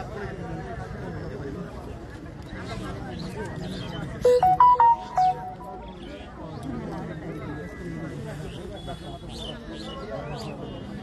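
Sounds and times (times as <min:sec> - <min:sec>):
crowd chatter: 0:00.0 - 0:11.0
electronic beeping melody: 0:04.3 - 0:06.0.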